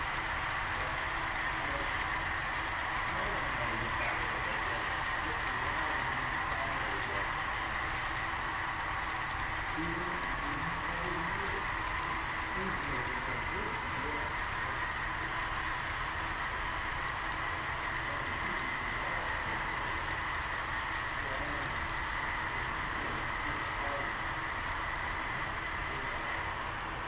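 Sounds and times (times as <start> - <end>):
model train wheels whirring on rail: 0.0 - 27.0.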